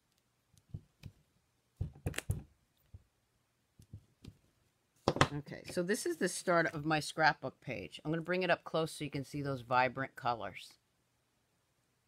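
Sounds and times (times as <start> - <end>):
rubber stamps tapping on card: 1.8 - 2.5.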